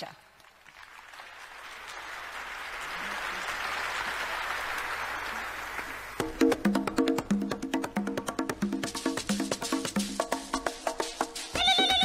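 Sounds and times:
audience applause: 0.5 - 6.2.

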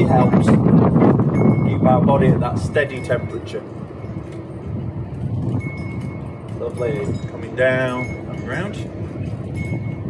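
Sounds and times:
gusty wind on microphone: 0.0 - 10.0
wind chime ringing: 1.3 - 2.0, 2.6 - 4.6, 5.4 - 10.0.

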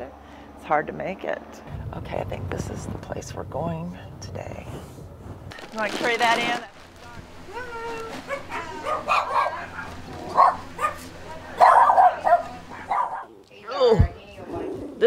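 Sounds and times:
dogs barking and yipping: 8.2 - 13.3.

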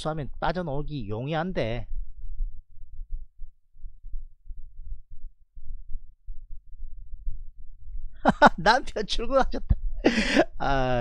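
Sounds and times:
low rumbling thumps: 0.3 - 8.5
breath noise on microphone: 9.9 - 10.6.

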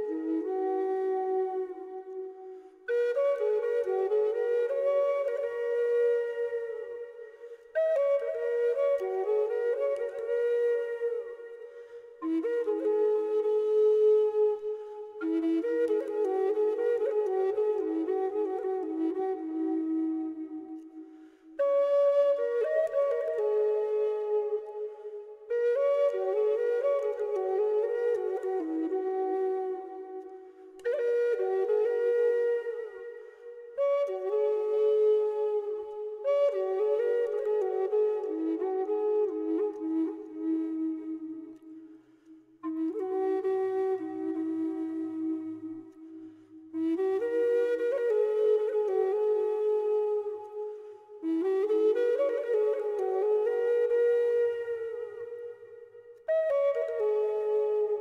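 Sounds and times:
flute playing slow melody: 0.0 - 58.0.

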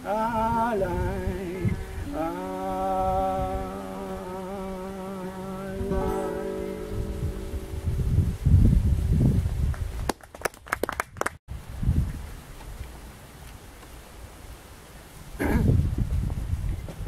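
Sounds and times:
acoustic guitar notes: 0.0 - 8.6
wind buffeting microphone: 0.0 - 12.9, 15.3 - 17.0.

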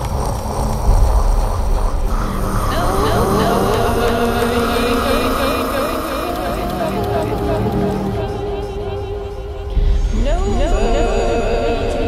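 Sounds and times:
deep low rumble: 0.0 - 12.0
wavering pitched tones: 0.8 - 12.0.

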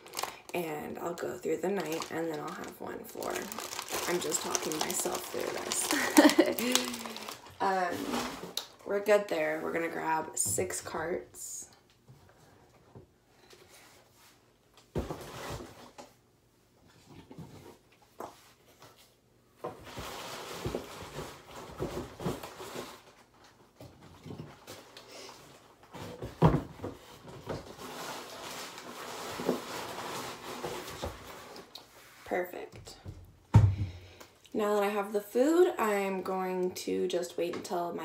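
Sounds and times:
cartons rustling: 1.1 - 8.6.

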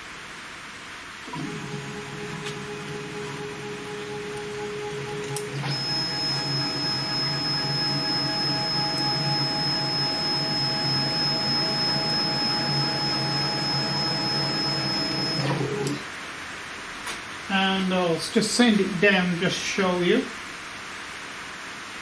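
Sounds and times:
stepper motors whining: 1.3 - 16.0.

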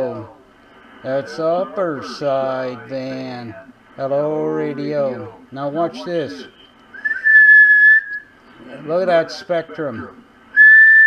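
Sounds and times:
steady whistle: 6.5 - 8.4, 10.5 - 11.0.

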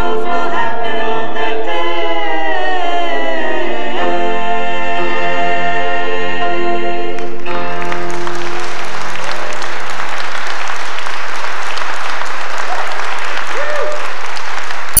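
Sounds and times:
audience applauding: 7.2 - 15.0.

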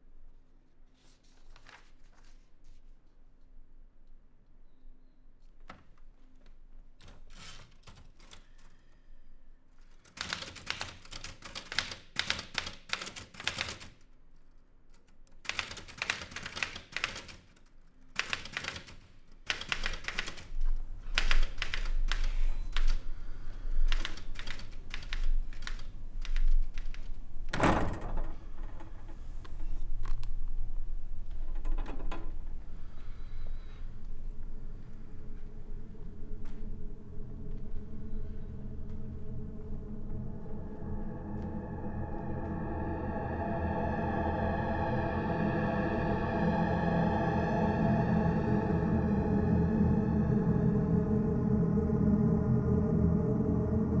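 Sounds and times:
typewriter keys clacking: 9.8 - 14.0, 15.0 - 17.6, 18.2 - 23.0, 23.9 - 27.2
low rumble: 27.2 - 54.0.

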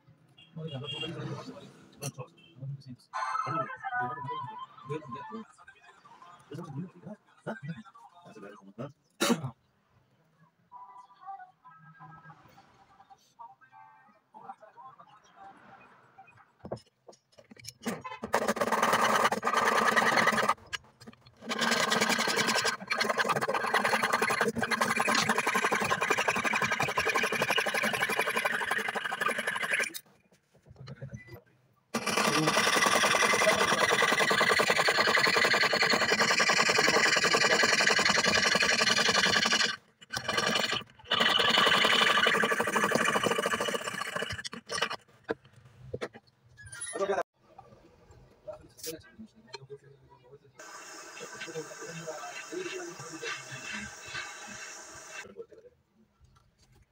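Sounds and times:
saw blade rasping on metal: 18.3 - 20.8, 21.4 - 30.0, 32.0 - 45.0.

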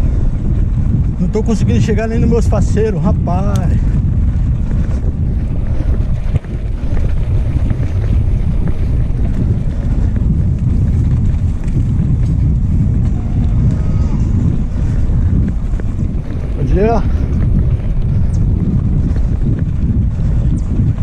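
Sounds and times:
bike rattling on cobblestones: 0.0 - 21.0
wind buffeting microphone: 0.0 - 21.0.

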